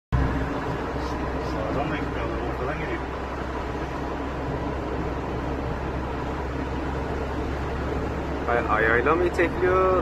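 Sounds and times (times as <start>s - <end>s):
road and engine noise inside car: 0.1s - 10.0s
constant low hum: 0.2s - 10.0s.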